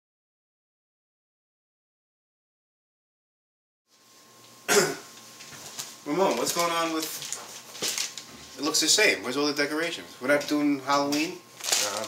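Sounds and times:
person coughing: 4.7 - 5.1.

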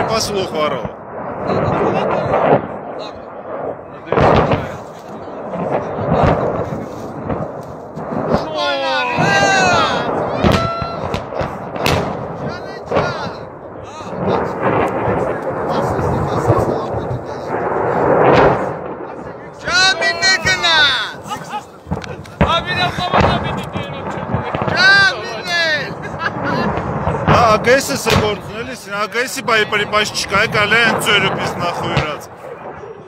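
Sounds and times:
loud bang: 0.0 - 33.0
rumble of blasts: 0.0 - 33.0.

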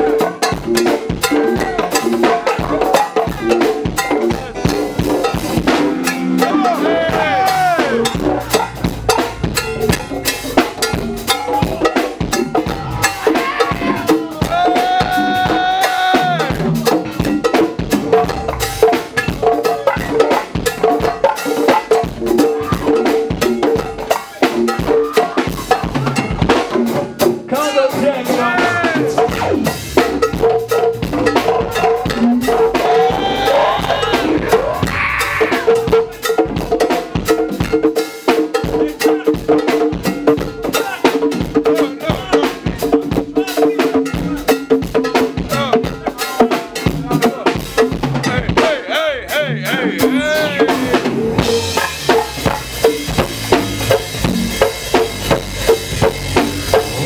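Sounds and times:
salsa music melody: 0.0 - 26.6, 44.6 - 57.0
conga drums fast rhythm: 0.0 - 57.0.

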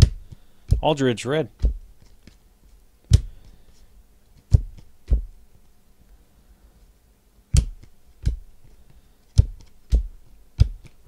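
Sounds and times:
cards being handled: 1.6 - 4.9
cards thumping on table: 3.1 - 3.6.

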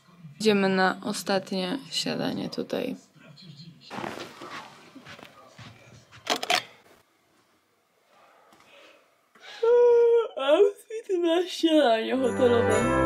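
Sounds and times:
slippered footsteps scuffing: 3.9 - 7.0
clothing rustle: 3.9 - 7.5
music with long held note: 12.2 - 13.0.

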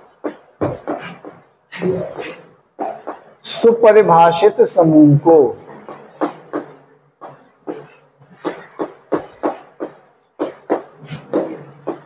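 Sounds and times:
chalk tapping and scraping on blackboard: 0.0 - 3.6, 5.8 - 12.0.

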